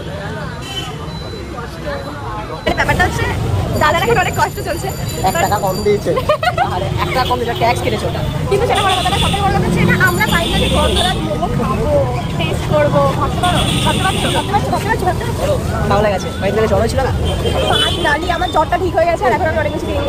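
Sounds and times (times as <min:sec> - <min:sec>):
low rumble of vehicle traffic: 0:00.0 - 0:20.0
people chattering: 0:00.0 - 0:20.0.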